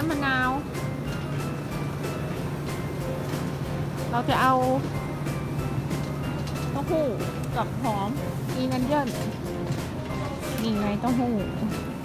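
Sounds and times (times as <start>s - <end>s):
woman's voice: 0.0s - 0.6s, 4.1s - 4.9s, 6.8s - 9.2s, 10.6s - 11.8s
background music: 0.0s - 12.0s.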